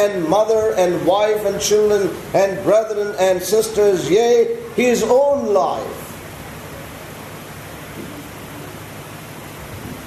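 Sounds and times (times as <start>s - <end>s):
faint low hum: 0.0s - 10.0s
steady background hiss: 0.0s - 10.0s.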